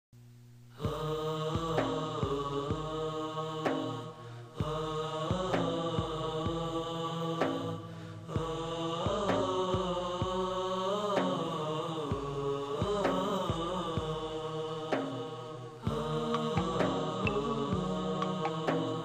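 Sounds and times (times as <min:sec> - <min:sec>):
vocal chorus singing harmonies: 0:00.7 - 0:19.0.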